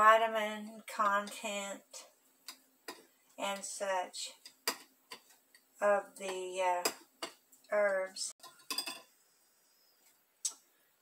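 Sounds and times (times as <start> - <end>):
kitchenware clinking on steel bowl: 8.4 - 9.2.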